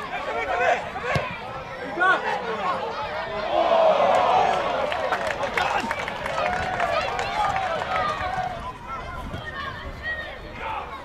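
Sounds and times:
people shouting and calling out: 6.8 - 11.0.

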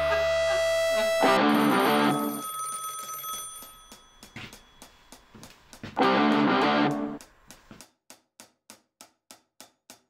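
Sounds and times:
telephone bell ringing: 1.2 - 5.1.

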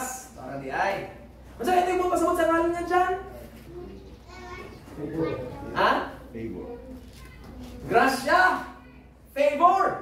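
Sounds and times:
quiet talking: 3.2 - 9.3.

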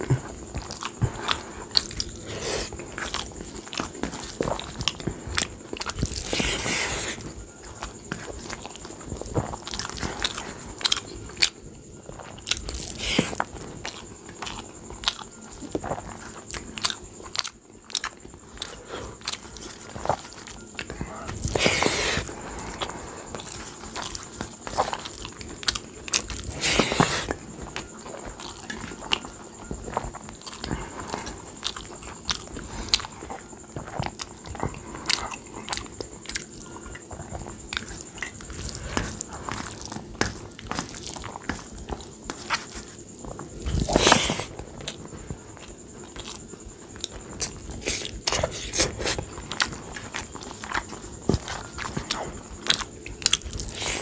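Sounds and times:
wet chewing and mouth clicks: 0.0 - 54.0.

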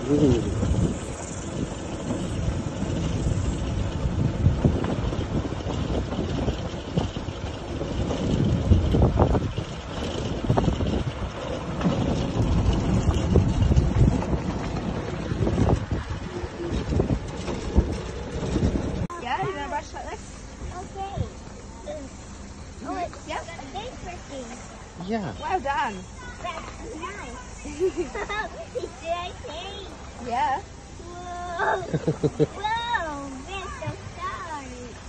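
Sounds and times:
knocks and rattles over bumps: 0.0 - 30.8, 31.8 - 35.0
wind buffeting microphone: 0.0 - 30.8
cart rumbling on gravel: 0.0 - 35.0.

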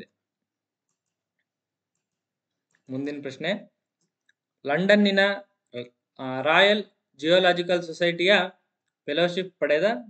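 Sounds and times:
computer mouse clicks: 0.8 - 2.9.

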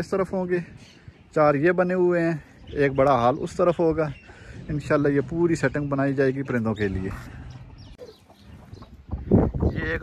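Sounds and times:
chickens clucking softly: 7.9 - 9.9.

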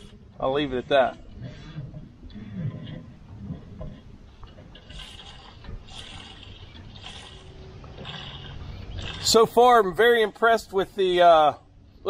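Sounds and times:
fuel pouring and gurgling: 4.8 - 9.6.

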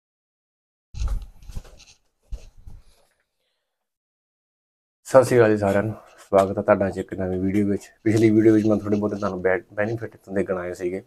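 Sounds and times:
clothing rustling on microphone: 1.0 - 3.2.

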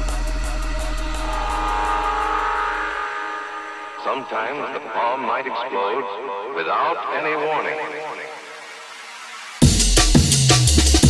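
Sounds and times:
drum and bass beat: 0.0 - 3.0, 8.4 - 11.0
held synth pad: 0.0 - 6.6
spoken voice sample: 4.0 - 8.6.

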